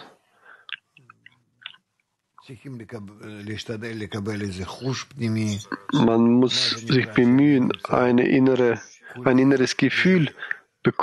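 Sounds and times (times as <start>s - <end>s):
man speaking: 2.5s - 11.0s.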